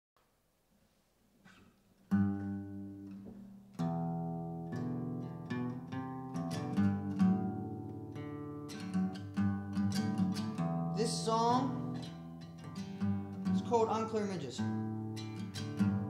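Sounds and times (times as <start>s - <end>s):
acoustic guitar strummed: 2.1s - 16.0s.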